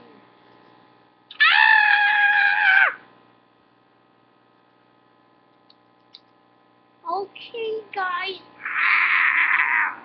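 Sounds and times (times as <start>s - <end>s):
person screaming high-pitched: 1.3s - 3.0s, 8.6s - 10.0s.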